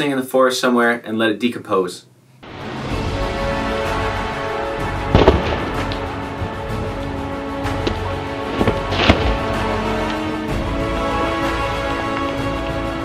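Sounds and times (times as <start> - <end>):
background music: 2.4 - 13.0
surfboard cracking and crunching: 7.8 - 10.4.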